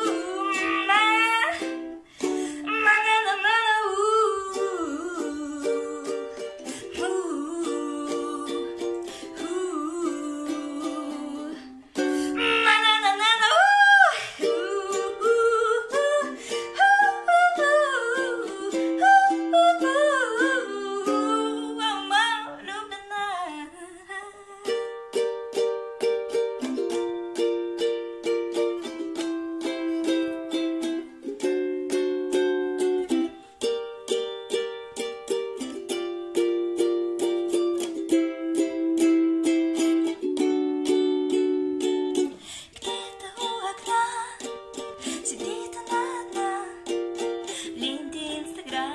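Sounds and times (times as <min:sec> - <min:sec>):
woman singing: 0:00.0 - 0:25.2, 0:37.5 - 0:48.9
strummed ukulele: 0:00.0 - 0:48.9.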